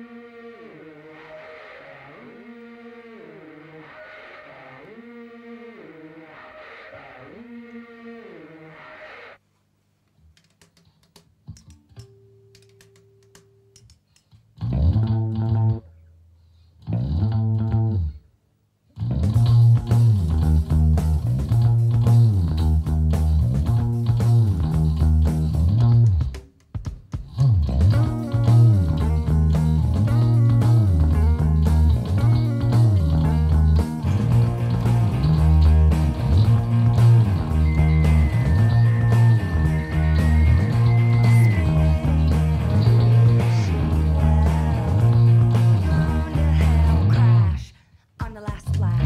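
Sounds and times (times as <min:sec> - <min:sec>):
electric bass phrases: 0:14.6 - 0:16.0, 0:16.8 - 0:18.2, 0:18.9 - 0:26.4, 0:27.4 - 0:47.7
rock band with drums: 0:19.0 - 0:47.3
distorted voice: 0:45.8 - 0:49.0.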